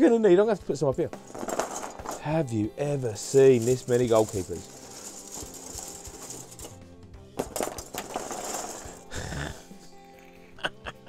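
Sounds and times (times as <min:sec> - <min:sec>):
soft background music: 0:00.0 - 0:11.0
plastic figures clattering: 0:01.1 - 0:02.4, 0:03.2 - 0:06.8, 0:07.4 - 0:09.2.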